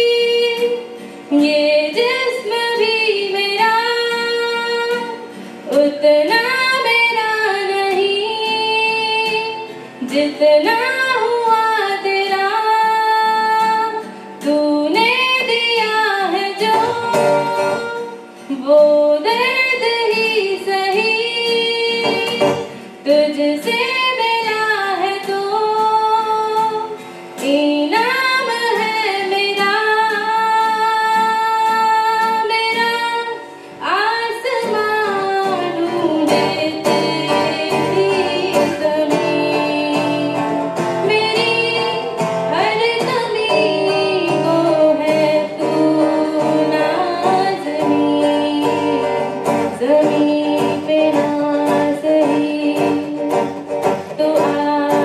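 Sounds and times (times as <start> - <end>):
strummed acoustic guitar: 0.0 - 55.0
woman singing into a microphone: 0.0 - 55.0
singer breathing: 0.9 - 1.3, 5.2 - 5.7, 22.6 - 23.0, 33.4 - 33.8.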